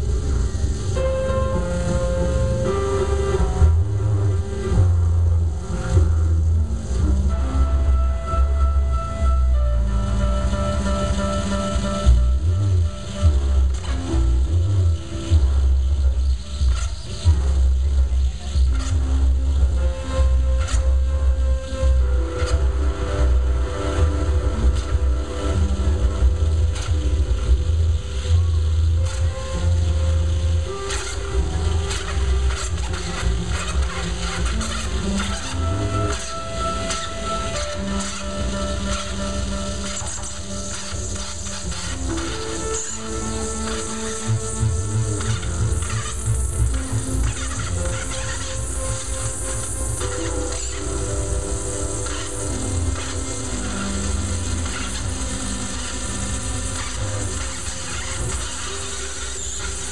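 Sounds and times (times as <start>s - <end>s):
deep heavy bass: 0.0s - 36.1s
loud electronic music: 0.0s - 59.9s
sustained synth tones: 0.0s - 59.9s.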